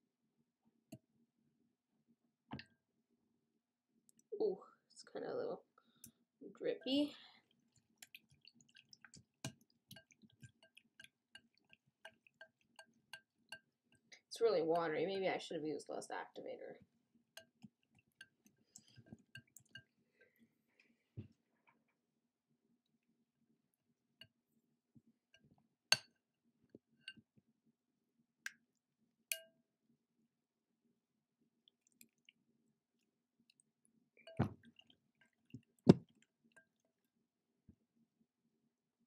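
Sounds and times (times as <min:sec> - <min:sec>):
whisk clicking in wet slime: 0:06.8 - 0:14.1, 0:17.3 - 0:19.9, 0:31.7 - 0:37.0.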